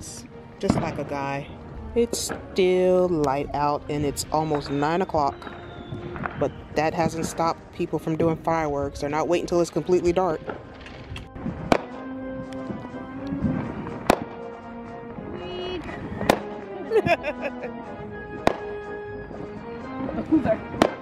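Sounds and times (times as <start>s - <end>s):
background music with held tones: 0.0s - 21.0s
firework bangs: 0.6s - 1.4s, 3.9s - 8.4s, 10.4s - 15.4s, 16.0s - 21.0s.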